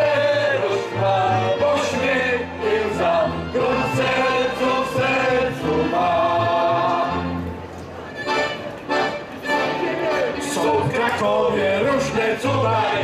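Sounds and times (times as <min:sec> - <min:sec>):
group singing with band: 0:00.0 - 0:07.3, 0:10.6 - 0:13.0.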